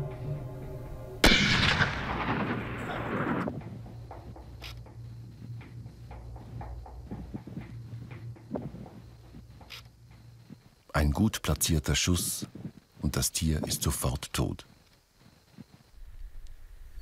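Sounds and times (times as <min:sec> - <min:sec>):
rifle shot echoing: 0:01.2 - 0:03.5
faint scattered clicks: 0:03.4 - 0:10.9.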